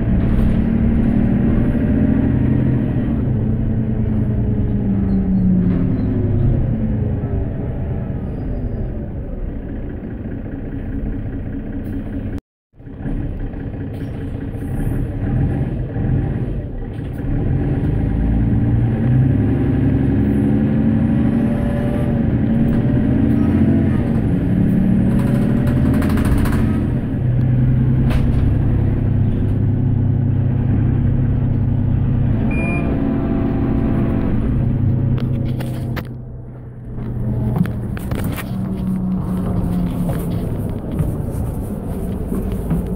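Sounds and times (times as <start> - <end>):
bus diesel engine: 0.0 - 42.9
road noise: 0.0 - 42.9.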